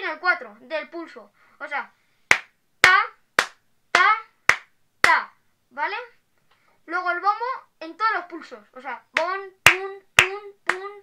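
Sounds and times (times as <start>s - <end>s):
steady hand claps: 2.3s - 5.2s, 9.2s - 10.9s.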